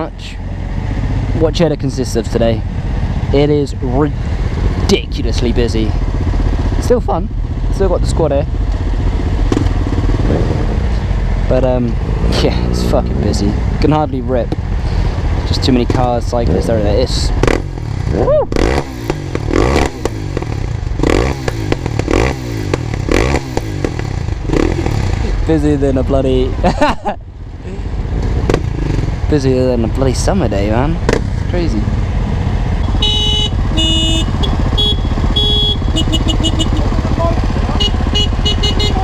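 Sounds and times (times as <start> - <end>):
person laughing: 26.6 - 27.9
motorcycle engine idling: 30.5 - 39.0
other motorcycles idling: 32.8 - 39.0.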